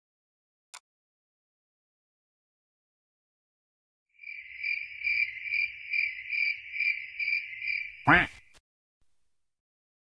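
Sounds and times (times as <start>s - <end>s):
crickets chirping: 4.2s - 8.5s.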